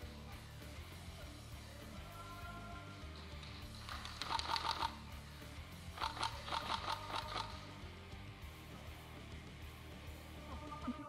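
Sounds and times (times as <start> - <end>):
background music: 0.0 - 11.0
airsoft gun firing bursts: 3.7 - 5.0, 5.9 - 7.7.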